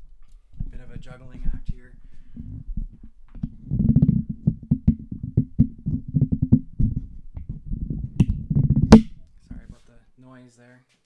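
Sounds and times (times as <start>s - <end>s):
microphone handling knocks and rubs: 0.6s - 9.8s.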